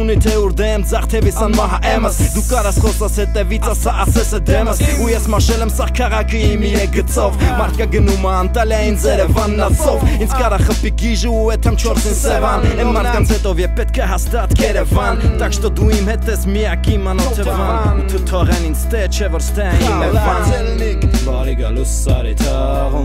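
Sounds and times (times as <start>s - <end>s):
hip-hop beat with deep bass: 0.0s - 23.0s
person rapping: 0.0s - 23.0s.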